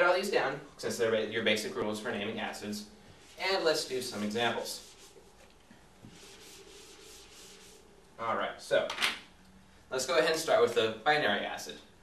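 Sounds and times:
eraser rubbing whiteboard: 3.2 - 8.0.

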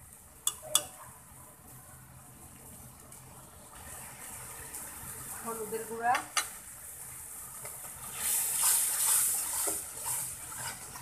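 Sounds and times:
spoon knocking on wok: 0.4 - 1.0
paste sizzling in oil: 2.6 - 11.0.

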